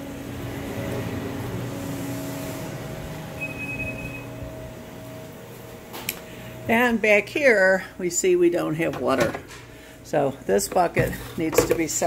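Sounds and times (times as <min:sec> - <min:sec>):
machine hum: 0:00.0 - 0:11.4.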